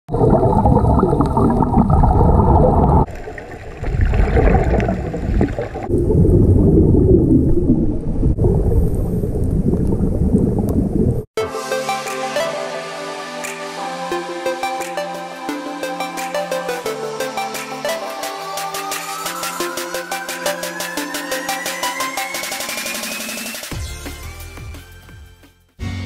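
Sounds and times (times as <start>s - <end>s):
scuba regulator breathing bubbles: 0.1s - 7.7s.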